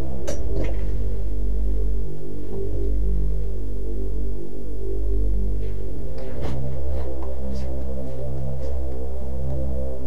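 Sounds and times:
film score low notes: 0.0s - 10.0s.

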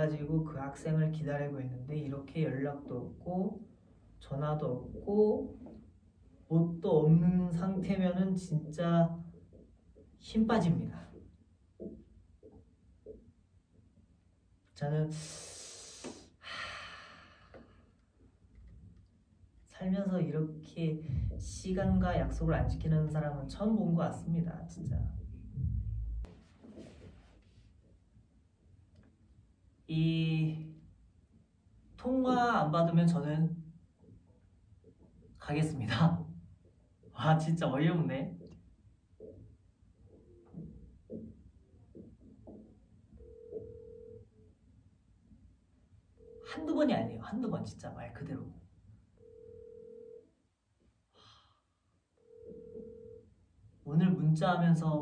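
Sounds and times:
telephone ringback beep: 49.2s - 50.2s, 52.2s - 53.2s.

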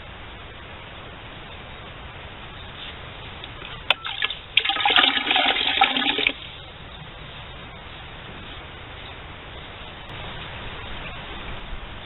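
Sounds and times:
water splashing into bucket: 3.9s - 6.5s.

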